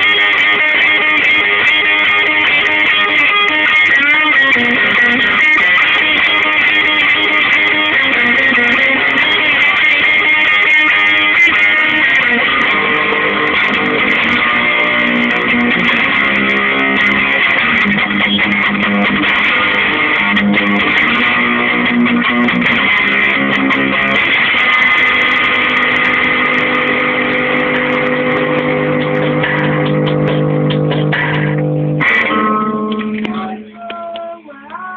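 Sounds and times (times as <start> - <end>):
distorted electric guitar: 0.0 - 34.9
drum machine beat: 28.4 - 31.6.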